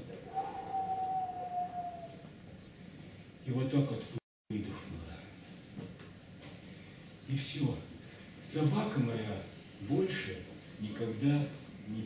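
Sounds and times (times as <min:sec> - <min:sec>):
person imitating dog howl: 0:00.4 - 0:02.2.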